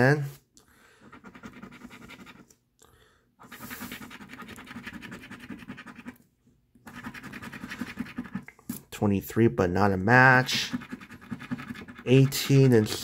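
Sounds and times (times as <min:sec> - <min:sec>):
coin scraping scratch-off ticket: 0:10.4 - 0:13.0.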